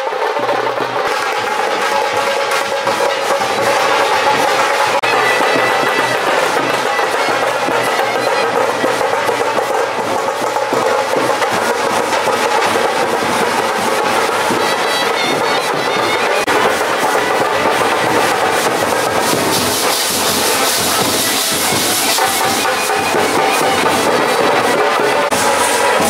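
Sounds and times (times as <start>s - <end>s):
continuous drumming: 0.0s - 26.0s
horns and wind instruments: 0.0s - 26.0s.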